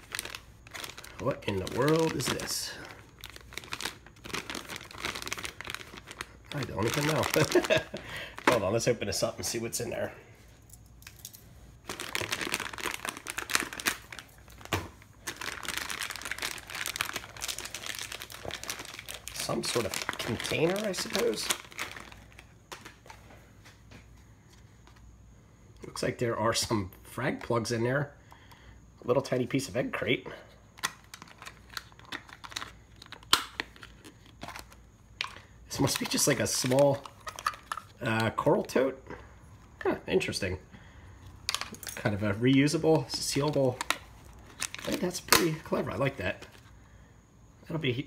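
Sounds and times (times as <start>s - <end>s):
plastic bag crinkling: 0.0s - 9.5s, 11.8s - 23.2s, 30.7s - 38.7s, 41.4s - 46.7s
plugs rattling in container: 34.4s - 38.3s.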